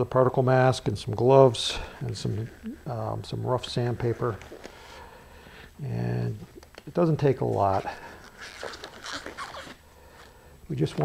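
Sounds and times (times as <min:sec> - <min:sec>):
gloves rubbing and stretching: 0:01.4 - 0:05.7, 0:06.4 - 0:11.0
glove squeaks: 0:06.5 - 0:11.0.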